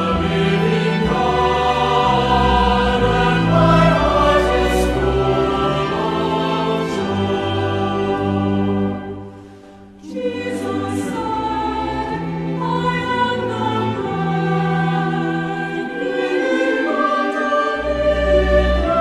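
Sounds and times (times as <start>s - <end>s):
choral music with held chords: 0.0s - 19.0s.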